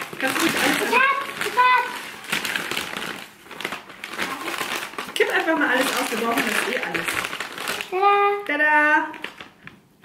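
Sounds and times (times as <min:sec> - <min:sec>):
plastic bag crinkling: 0:00.0 - 0:09.9.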